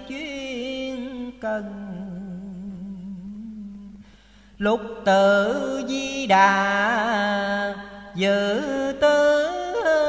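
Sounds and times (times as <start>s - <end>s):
person chanting poetry: 0.0s - 4.0s, 4.6s - 10.0s.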